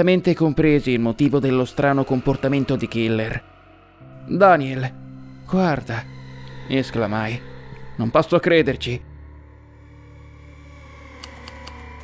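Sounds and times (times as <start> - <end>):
low droning score: 0.0 - 12.0
quick irregular clicks: 11.2 - 11.9.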